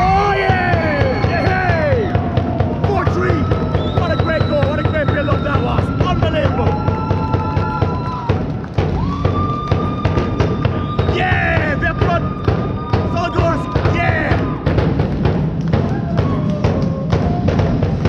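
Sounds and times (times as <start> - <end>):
arena music over loudspeakers: 0.0 - 18.0.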